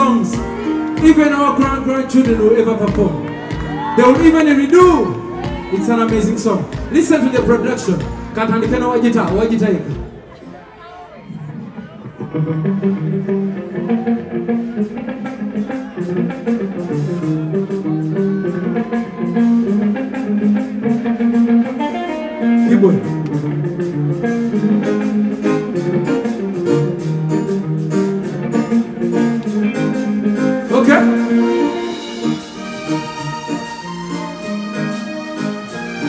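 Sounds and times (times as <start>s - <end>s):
drums with steady beat: 0.0s - 10.3s, 23.0s - 36.0s
electric guitar playing: 0.0s - 10.3s, 11.5s - 36.0s.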